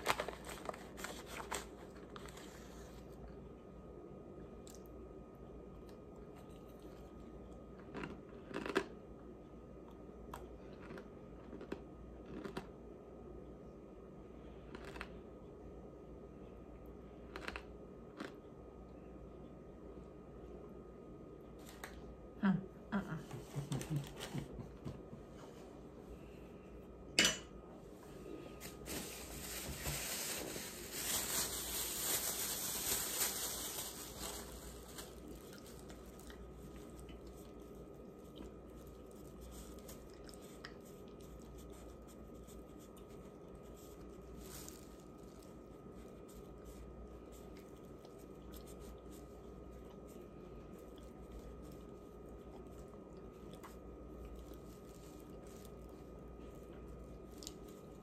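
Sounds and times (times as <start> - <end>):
plastic bag rustling: 0.0 - 3.2, 28.2 - 58.0
chewing and crunching starch: 5.8 - 9.2, 9.9 - 12.8, 14.6 - 15.2, 17.2 - 18.5, 32.8 - 58.0.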